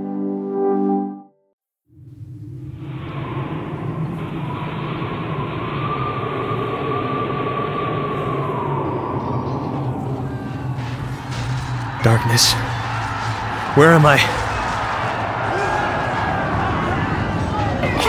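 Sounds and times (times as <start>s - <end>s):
rumbling hissing drone: 2.0s - 12.0s
faint high whine sliding down: 2.0s - 15.4s.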